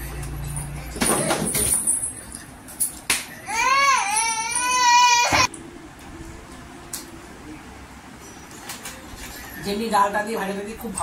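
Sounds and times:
child crying: 0:03.4 - 0:05.5.

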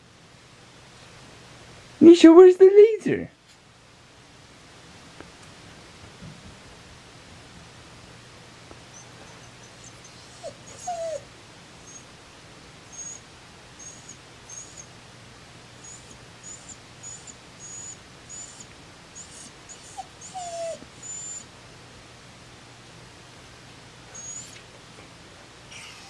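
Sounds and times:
dog whimpering: 0:08.9 - 0:12.1, 0:12.9 - 0:13.2, 0:13.8 - 0:14.9, 0:15.8 - 0:21.5, 0:24.2 - 0:24.6, 0:25.7 - 0:26.0
dog whining: 0:08.9 - 0:12.1, 0:12.9 - 0:13.2, 0:13.8 - 0:14.9, 0:15.8 - 0:21.5, 0:24.1 - 0:24.6, 0:25.7 - 0:26.0.

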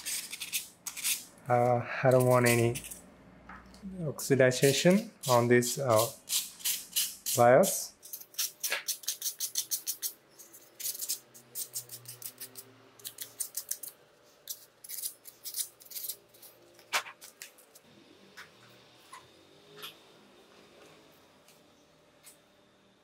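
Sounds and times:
sandpaper scratching metal pins: 0:00.0 - 0:03.0, 0:04.6 - 0:17.1.

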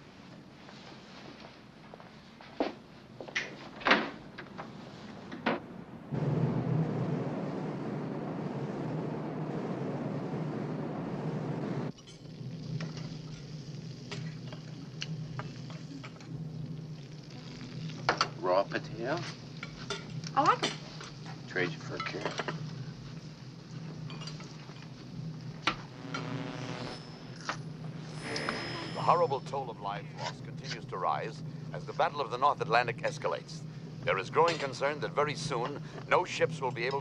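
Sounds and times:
ship at sea rushing hum: 0:05.7 - 0:12.0
food sizzling: 0:06.2 - 0:30.1
dishes and utensils clinking: 0:24.1 - 0:24.9.

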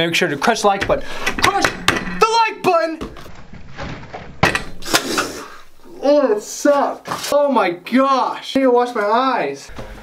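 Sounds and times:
sharp knock: 0:01.3 - 0:02.3.

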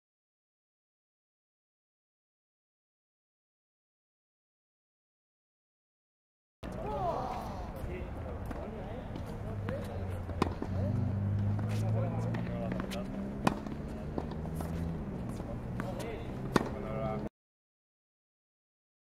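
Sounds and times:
ball bouncing on court: 0:08.4 - 0:16.9
tennis racket striking ball: 0:08.4 - 0:17.0.

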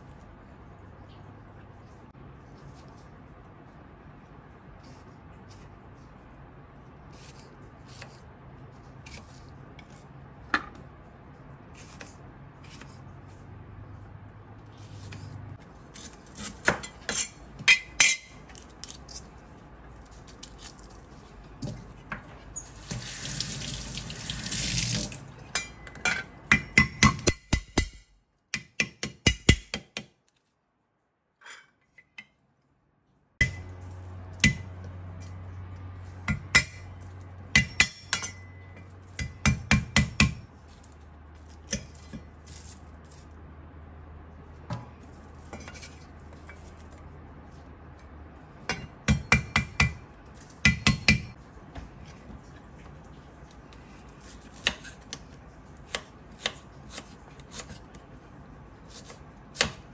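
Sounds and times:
water running into steel sink: 0:22.6 - 0:25.3.

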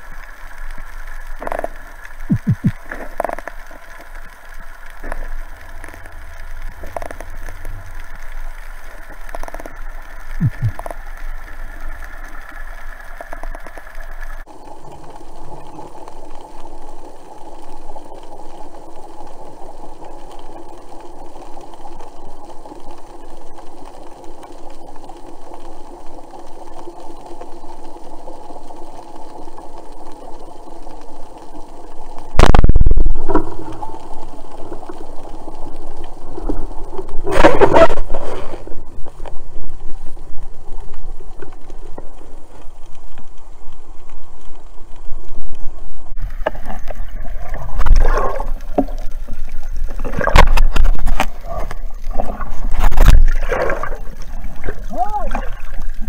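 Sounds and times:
faint steady tones: 0:00.0 - 0:56.0
underwater drone: 0:00.0 - 0:56.0.

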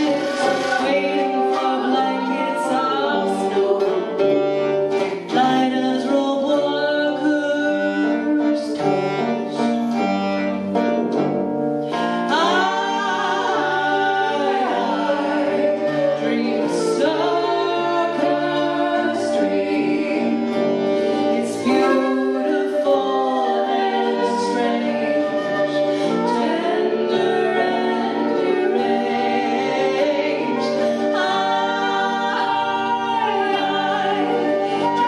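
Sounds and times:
voices singing together: 0:00.0 - 0:09.6, 0:12.3 - 0:35.0
guitar: 0:00.0 - 0:35.0
harmonium: 0:00.0 - 0:35.0.

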